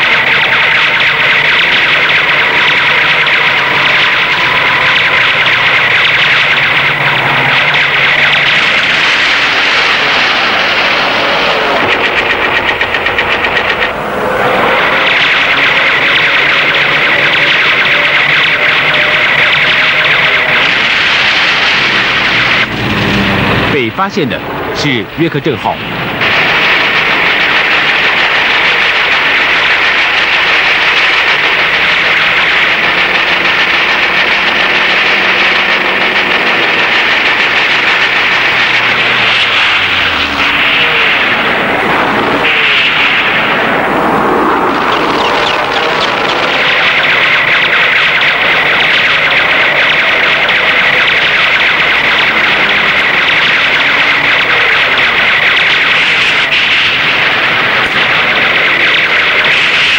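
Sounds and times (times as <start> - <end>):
plane passing by: 0.0 - 59.9
propeller aircraft engines droning: 0.0 - 59.9.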